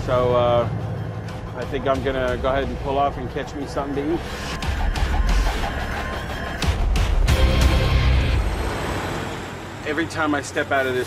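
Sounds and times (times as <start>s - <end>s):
truck engine and tyre noise: 0.0s - 11.0s
music with heavy beat: 4.5s - 8.1s.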